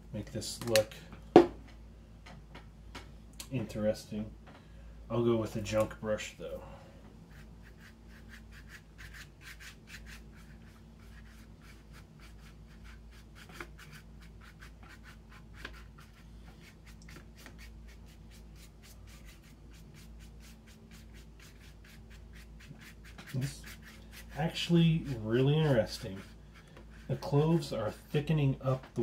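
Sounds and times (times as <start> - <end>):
paintbrush scrubbing on paper: 7.3 - 28.3.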